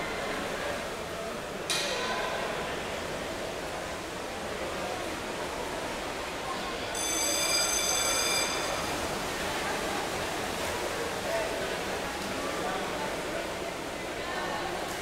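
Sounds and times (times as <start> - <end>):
indoor swimming pool noise: 0.0 - 15.0
buzzer tone: 7.0 - 8.8.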